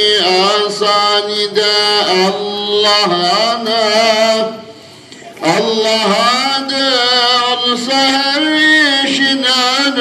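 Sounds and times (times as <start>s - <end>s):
man chanting a hymn: 0.0s - 10.0s.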